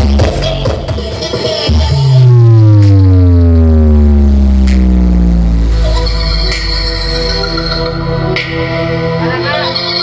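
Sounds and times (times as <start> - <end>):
bass-heavy music: 0.0 - 10.0
deep bass note sliding down: 1.7 - 8.4.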